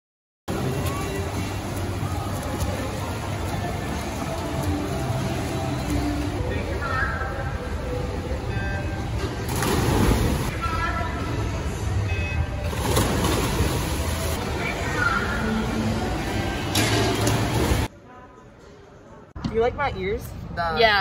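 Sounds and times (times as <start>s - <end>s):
swimmers splashing: 9.4s - 10.8s, 12.6s - 17.9s.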